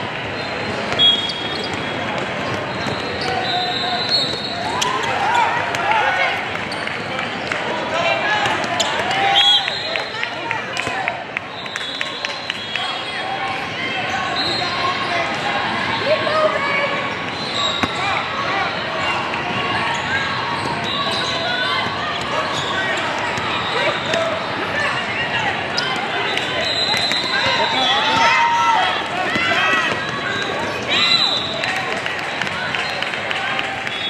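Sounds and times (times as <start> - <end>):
indistinct chatter of voices: 0.0 - 34.0
sneakers squeaking: 0.3 - 5.8, 6.6 - 7.6, 8.4 - 9.8, 11.6 - 33.1.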